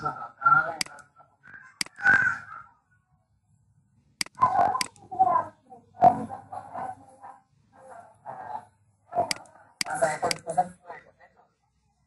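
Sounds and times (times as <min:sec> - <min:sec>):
sharp clicks: 0:00.8 - 0:01.1, 0:01.8 - 0:02.2, 0:04.2 - 0:05.0, 0:09.2 - 0:10.5
person speaking: 0:07.8 - 0:11.3.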